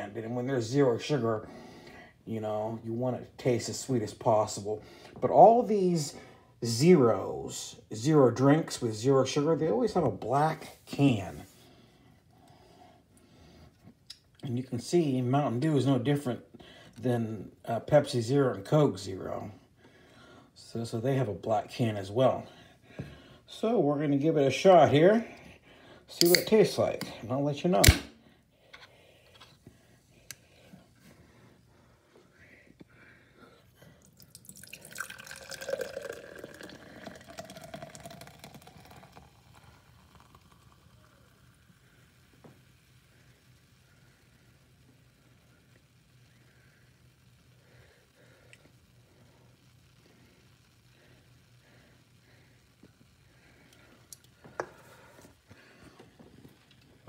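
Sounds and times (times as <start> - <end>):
soda pouring into glass: 34.0 - 42.2.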